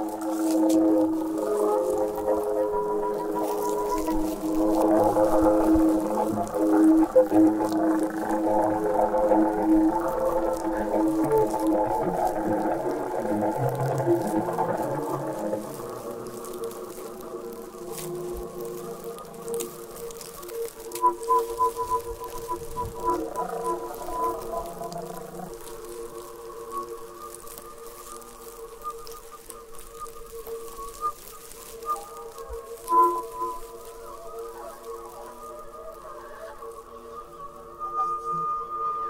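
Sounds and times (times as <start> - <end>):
flute drone in held tones: 0.0 - 39.0
short high flute notes: 35.8 - 39.0.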